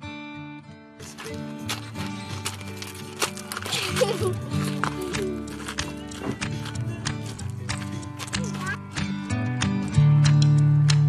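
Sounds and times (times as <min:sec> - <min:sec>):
music with clicking percussion: 0:02.0 - 0:11.0.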